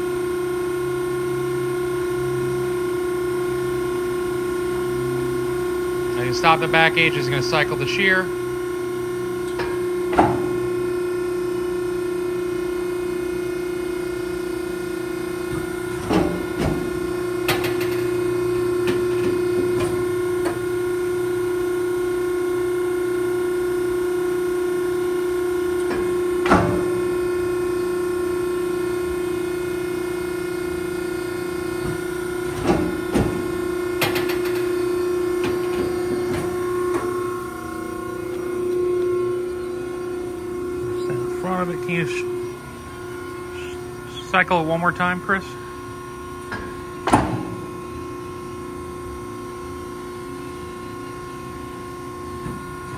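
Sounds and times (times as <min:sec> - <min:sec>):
hydraulic pump humming: 0:00.0 - 0:52.9.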